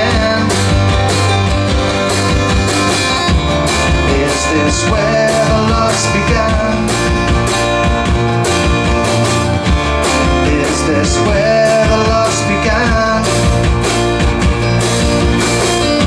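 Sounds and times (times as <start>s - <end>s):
drum kit with cymbals: 0.0s - 16.0s
electric bass: 0.0s - 16.0s
strummed acoustic guitar: 0.0s - 16.0s.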